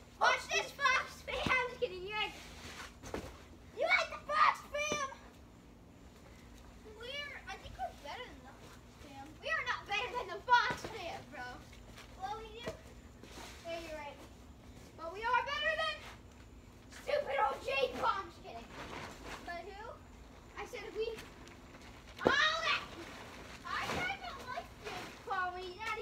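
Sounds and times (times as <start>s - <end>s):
young children shouting: 22.2s - 22.8s.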